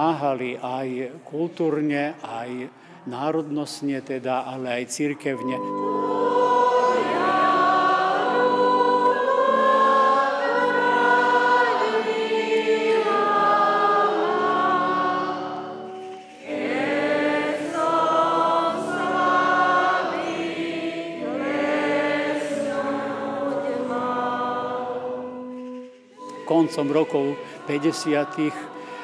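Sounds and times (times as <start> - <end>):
congregation singing a hymn: 1.6 - 29.0
organ accompaniment: 5.5 - 29.0.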